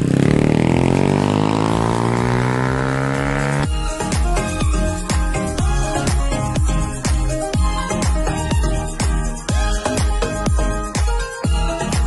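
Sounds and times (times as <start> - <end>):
dirt bike engine: 0.0 - 3.7
upbeat music with a beat: 3.4 - 12.0.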